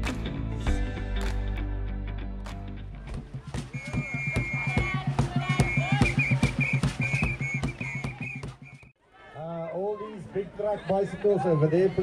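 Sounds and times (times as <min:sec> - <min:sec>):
percussive beats: 0:03.1 - 0:08.9
shrill warbling whistle: 0:03.7 - 0:08.9.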